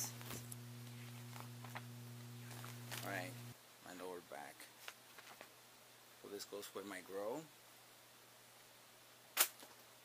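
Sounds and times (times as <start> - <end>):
paper being handled: 0.2 - 3.3, 4.8 - 5.5.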